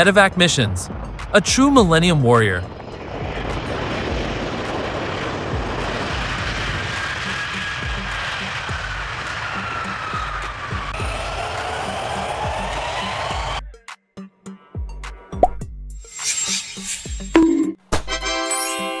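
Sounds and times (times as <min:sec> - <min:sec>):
jet engines whining: 0:00.0 - 0:13.6.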